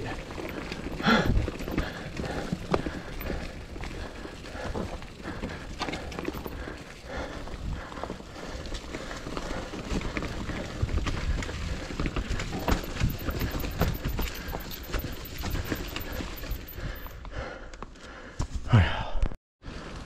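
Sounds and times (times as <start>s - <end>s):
bike tyres crunching through leaves: 0.0s - 13.5s
bike rattling and knocking: 0.0s - 17.1s.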